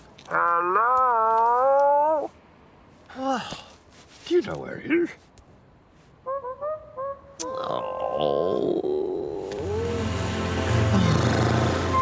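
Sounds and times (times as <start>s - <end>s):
wavering voice-like call: 6.2s - 9.9s.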